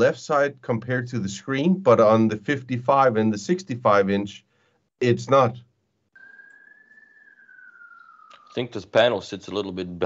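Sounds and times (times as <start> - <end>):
faint whistle-like tone: 6.1 - 9.2.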